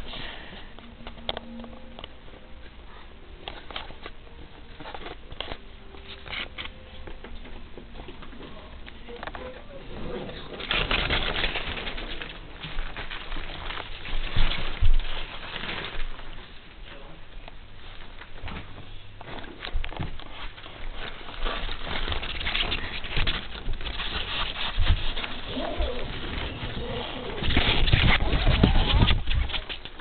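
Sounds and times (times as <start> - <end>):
bumps and rustling: 3.4 - 30.0
plastic sheeting crinkling: 8.6 - 17.1
low cooing animal calls: 25.5 - 29.0.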